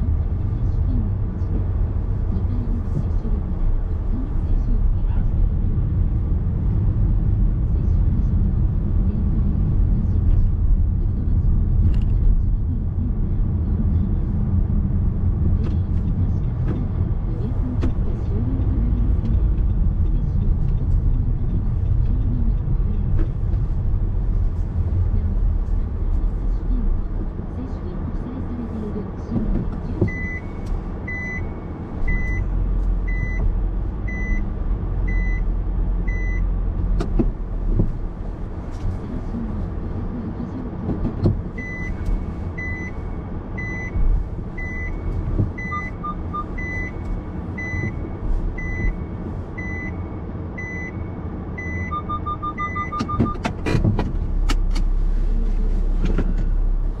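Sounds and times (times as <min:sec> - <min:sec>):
car cabin rumble: 0:00.0 - 0:57.0
quick lower parking sensor beeps: 0:30.1 - 0:32.5, 0:41.6 - 0:43.0, 0:43.6 - 0:53.4
reverse warning beeps: 0:30.1 - 0:32.5, 0:41.6 - 0:53.4.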